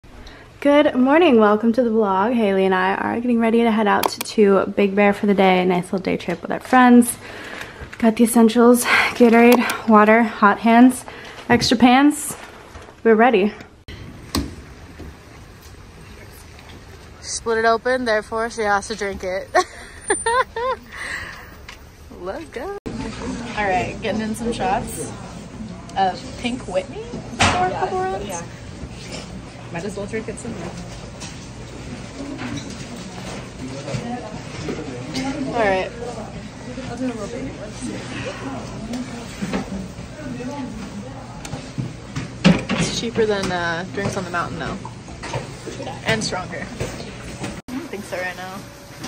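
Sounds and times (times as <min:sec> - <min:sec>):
low background hum: 0:00.1 - 0:49.0.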